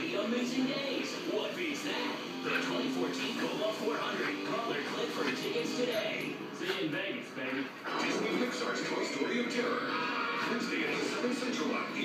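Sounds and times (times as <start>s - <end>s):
television music with voices: 0.0s - 12.0s.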